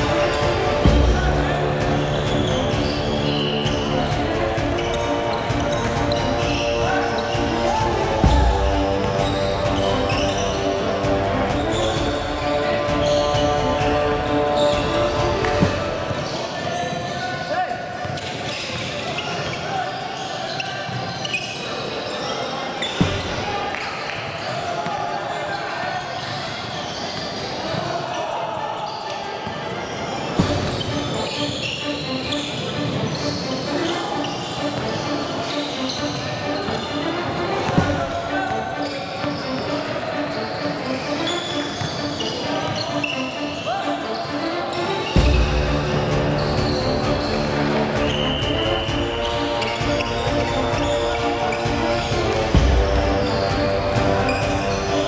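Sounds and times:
music with long held notes: 0.0s - 16.2s, 44.5s - 55.0s
players' voices echoing: 0.0s - 55.0s.

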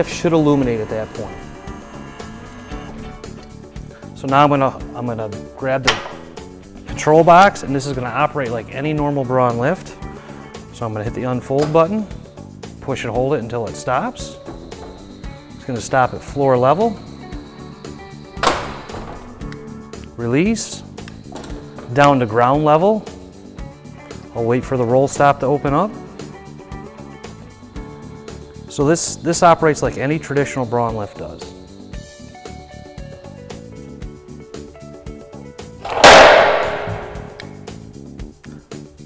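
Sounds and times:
background music: 0.0s - 39.0s
wheelchair lift unfolding: 0.1s - 4.1s, 18.4s - 19.6s, 21.1s - 22.5s, 35.8s - 37.4s
metal flap slamming on concrete: 5.9s - 6.4s, 18.4s - 19.5s, 35.8s - 37.5s
loud metal clunk: 5.9s - 6.7s, 14.4s - 15.7s, 18.4s - 19.6s, 35.8s - 37.6s.

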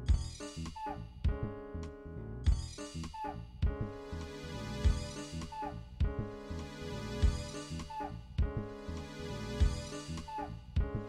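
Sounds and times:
looped keyboard music with beats: 2.5s - 11.0s.

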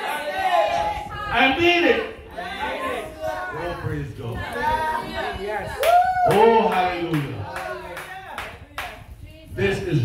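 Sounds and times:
hand claps: 5.8s - 9.0s.

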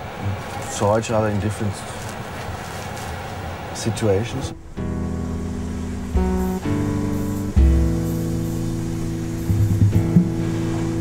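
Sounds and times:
guitar chord ringing: 4.5s - 11.0s
low picked guitar notes: 4.5s - 11.0s.

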